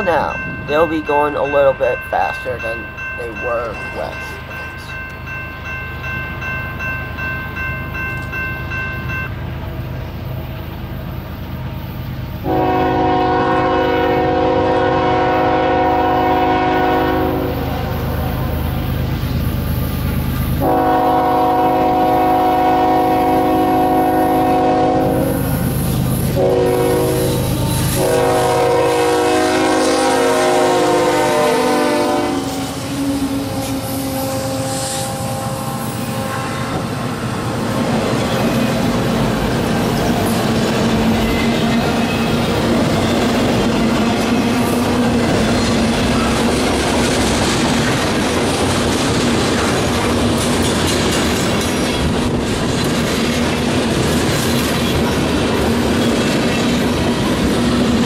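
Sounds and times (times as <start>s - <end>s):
freight train rumbling: 0.0s - 58.0s
locomotive horn blasts: 12.4s - 18.0s, 20.6s - 25.5s, 26.4s - 37.0s.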